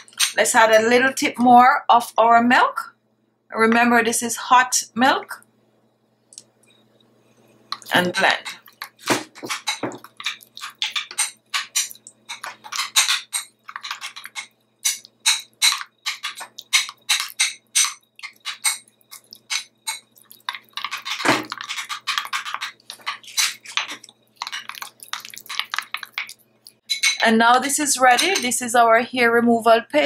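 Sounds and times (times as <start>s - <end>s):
metal spoon scraping glass bowl: 9.5s - 26.3s.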